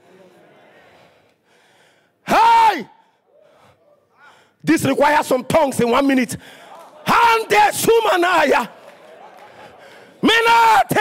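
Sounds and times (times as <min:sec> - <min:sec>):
faint voices in a hall: 0:00.0 - 0:01.6, 0:02.2 - 0:04.5.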